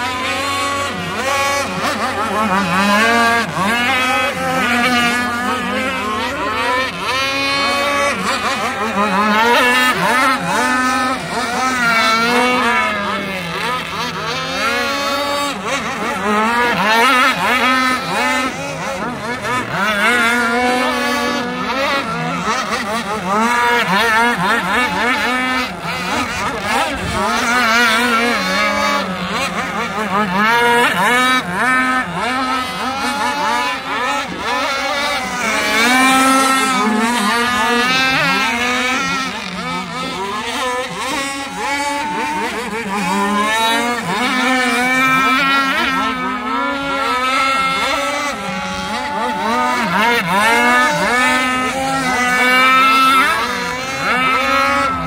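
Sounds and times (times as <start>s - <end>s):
racing boat engines passing: 0.0s - 55.0s.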